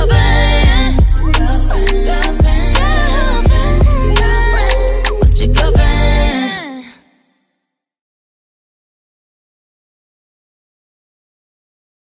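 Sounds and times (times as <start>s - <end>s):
pop song beat and bass: 0.0s - 6.9s.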